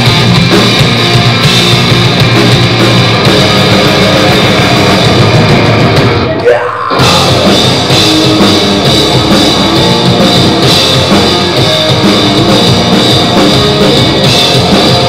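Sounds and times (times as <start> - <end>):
metal band playing live: 0.0 - 15.0.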